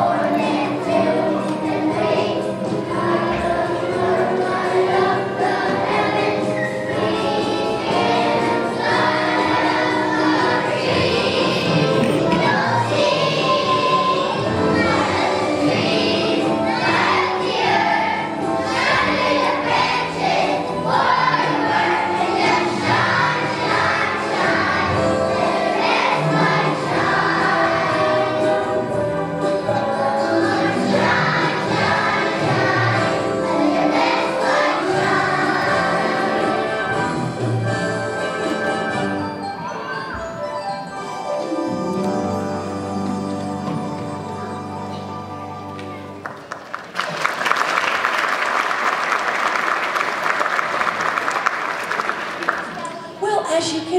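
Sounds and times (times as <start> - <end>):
children's choir singing: 0.0 - 40.2, 40.8 - 53.2
backing music: 0.0 - 53.9.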